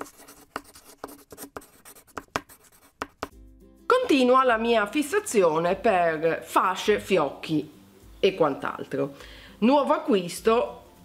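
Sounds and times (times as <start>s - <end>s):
chalk scratching on blackboard: 0.0s - 3.3s
faint background music: 0.1s - 11.0s.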